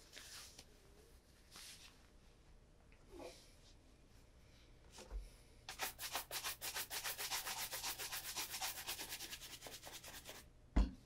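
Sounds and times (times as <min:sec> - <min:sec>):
shoe brush scrubbing leather: 0:05.7 - 0:10.4.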